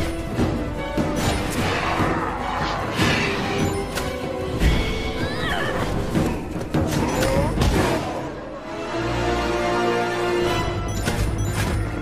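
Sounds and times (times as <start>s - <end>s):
dramatic music: 0.0s - 12.0s.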